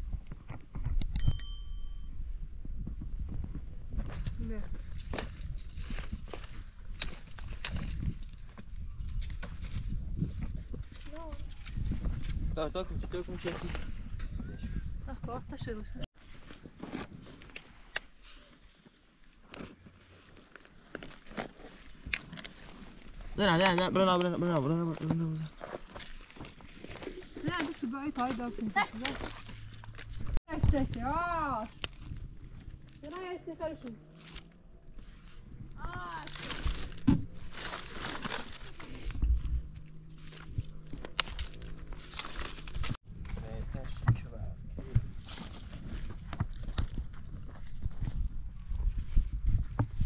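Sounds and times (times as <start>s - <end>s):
notification bell ding: 1.2s - 2.1s
twigs and leaves crunching: 3.9s - 12.5s, 16.2s - 43.4s, 45.0s - 49.2s
dry branches crackling: 4.1s - 12.4s, 18.5s - 43.4s.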